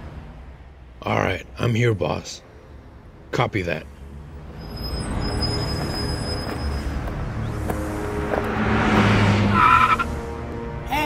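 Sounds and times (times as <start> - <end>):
vehicle rumbling: 0.0 - 11.0.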